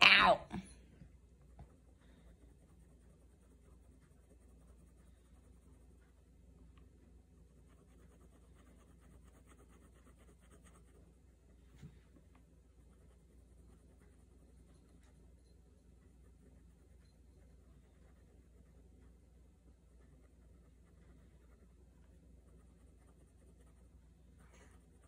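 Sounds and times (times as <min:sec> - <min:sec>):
pen scratching on paper: 0:02.3 - 0:06.1, 0:07.4 - 0:11.2.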